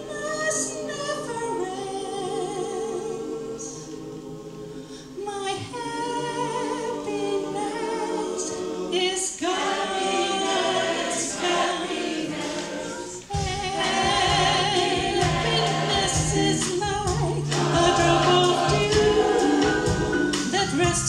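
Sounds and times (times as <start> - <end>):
mixed choir singing in harmony: 0.0 - 20.8.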